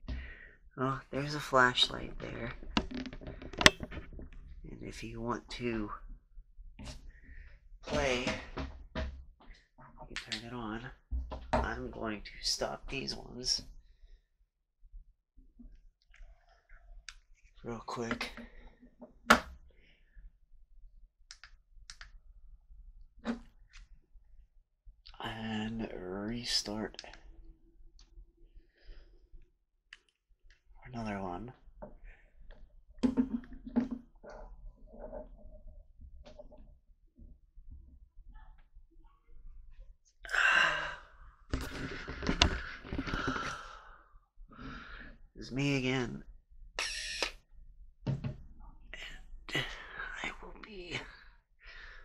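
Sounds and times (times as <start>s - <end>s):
man sighing heavily: 40.3s - 41.1s.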